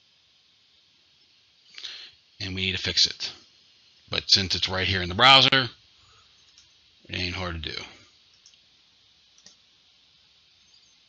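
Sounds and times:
computer mouse click: 8.3 - 8.6, 9.4 - 9.6.

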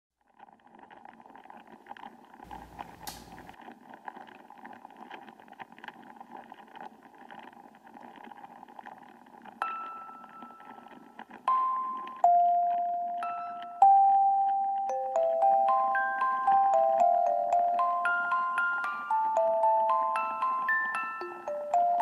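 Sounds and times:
small clicks: 0.4 - 12.3
bell-like chime: 12.4 - 22.0.

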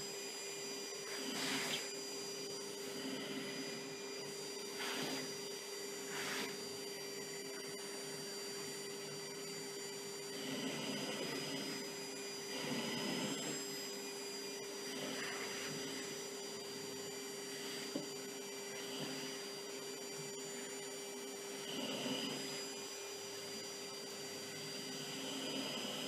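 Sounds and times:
vacuum cleaner running: 0.0 - 26.0.

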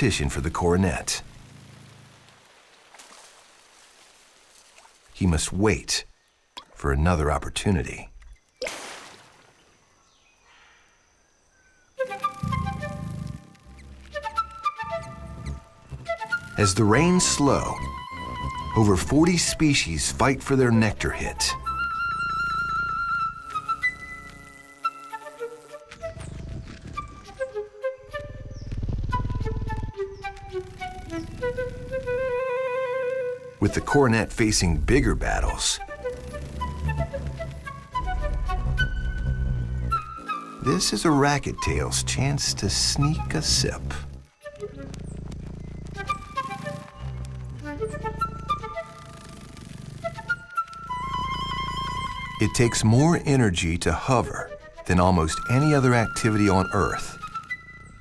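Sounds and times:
low sustained backing: 12.0 - 25.0, 25.9 - 58.0
flute music with vibrato: 12.0 - 45.1, 45.8 - 58.0
low hum: 12.2 - 25.0, 28.1 - 53.6.

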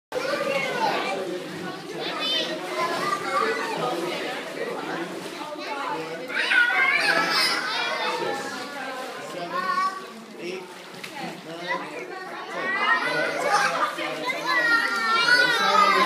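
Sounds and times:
children shouting and chattering: 0.1 - 16.0.

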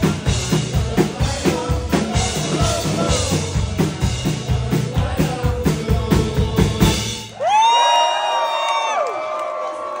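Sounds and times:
live band with drums: 0.0 - 7.7.

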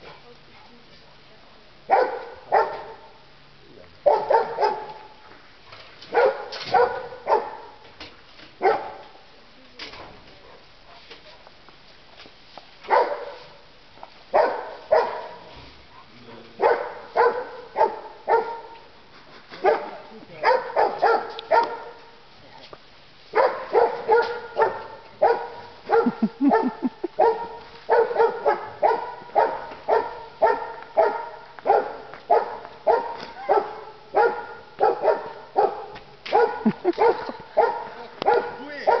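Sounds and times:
dog barking: 1.9 - 3.2, 4.0 - 5.2, 6.1 - 7.8, 8.6 - 9.1, 12.9 - 13.6, 14.3 - 18.8, 19.6 - 22.1, 23.3 - 39.0.

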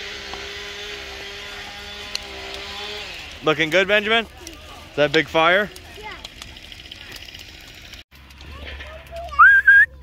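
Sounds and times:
person whistling: 9.4 - 9.9.

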